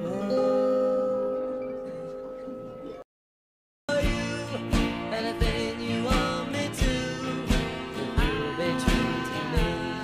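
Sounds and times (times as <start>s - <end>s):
band with acoustic guitars: 3.9s - 10.0s.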